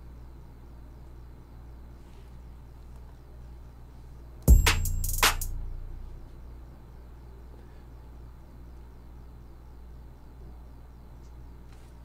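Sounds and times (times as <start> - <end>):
bright drum hit: 4.5 - 6.2
deep kick drum: 4.5 - 6.3.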